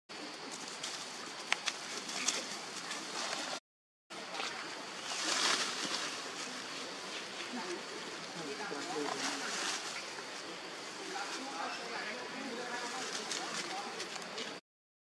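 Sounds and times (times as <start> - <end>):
leaves and undergrowth rustling: 0.1 - 3.6, 4.2 - 14.6.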